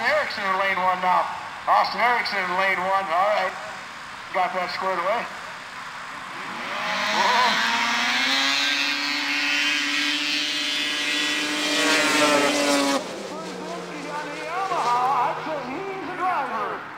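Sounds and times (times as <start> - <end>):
low engine tone: 5.3 - 16.9
snowmobile engines racing: 6.2 - 16.9
voices: 6.9 - 8.0, 12.0 - 16.9.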